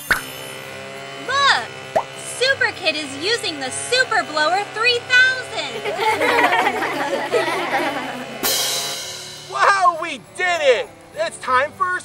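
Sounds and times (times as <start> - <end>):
voice: 1.3 - 1.7, 2.3 - 8.1, 9.5 - 12.0
crash cymbal hit: 8.4 - 9.6.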